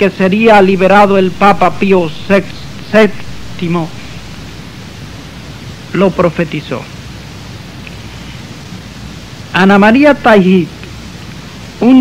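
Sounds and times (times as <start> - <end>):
man lecturing: 0.0 - 4.2, 5.9 - 6.9, 9.5 - 10.8, 11.8 - 12.0
background hiss: 0.0 - 12.0.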